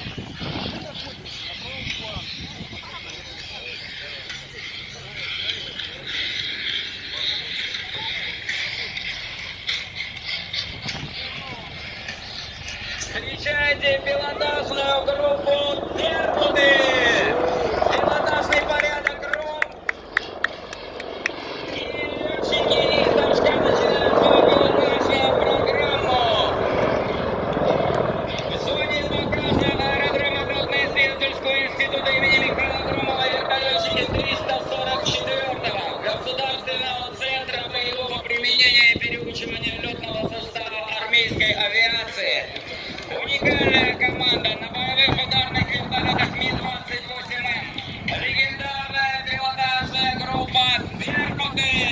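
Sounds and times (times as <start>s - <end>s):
spectators chatter: 0.0s - 41.3s
helicopters approaching: 0.0s - 51.9s.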